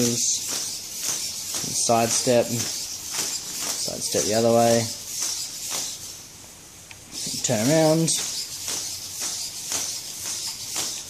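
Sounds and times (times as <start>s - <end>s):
plastic feet tapping on concrete: 0.0s - 6.0s, 7.4s - 11.0s
servos whirring: 0.0s - 6.3s, 6.9s - 11.0s.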